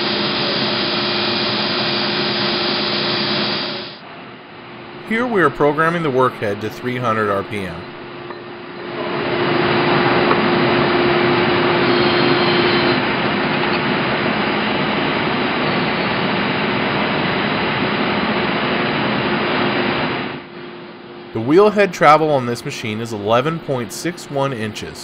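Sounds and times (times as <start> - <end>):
grinder machine whirring: 0.0 - 4.0, 8.3 - 17.9.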